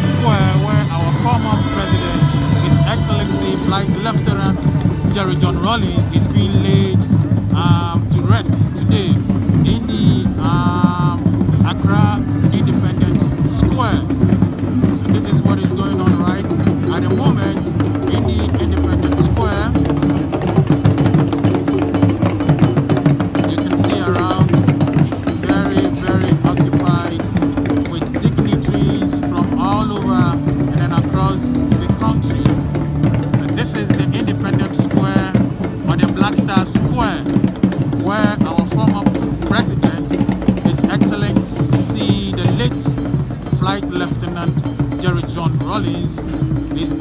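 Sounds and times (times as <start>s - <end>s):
crowd voices: 0.0s - 47.0s
music with steady drumming: 0.0s - 47.0s.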